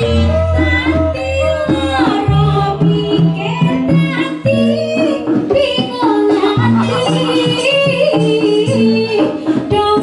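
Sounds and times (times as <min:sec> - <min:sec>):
live band playing: 0:00.0 - 0:10.0
person singing: 0:00.0 - 0:10.0
bass line: 0:06.6 - 0:08.9.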